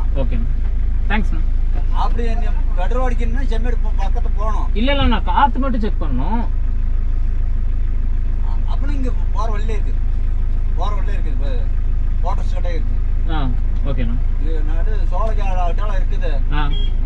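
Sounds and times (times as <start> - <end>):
people talking: 0.0 - 6.5, 8.4 - 10.0, 10.8 - 16.9
car engine idling: 0.0 - 17.0.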